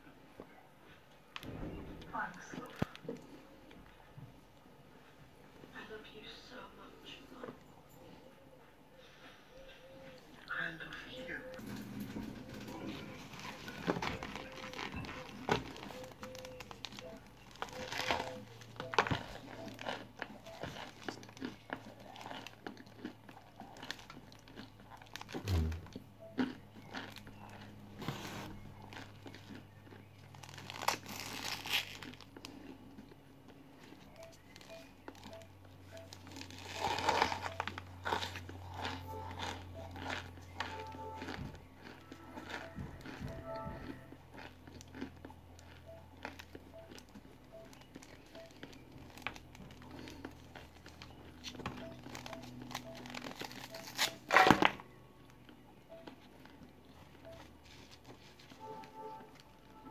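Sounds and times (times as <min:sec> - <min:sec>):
quiet background music: 0:00.0 - 0:59.9
crunching cornstarch lumps: 0:12.2 - 0:59.9
cardboard box crinkling: 0:30.3 - 0:32.3.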